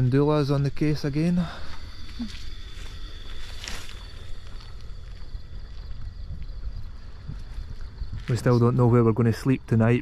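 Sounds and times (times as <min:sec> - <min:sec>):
wind buffeting microphone: 0:01.8 - 0:10.0.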